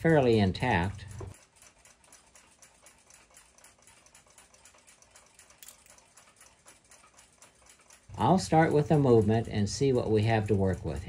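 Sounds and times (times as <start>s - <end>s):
clock ticking: 0.0s - 11.0s.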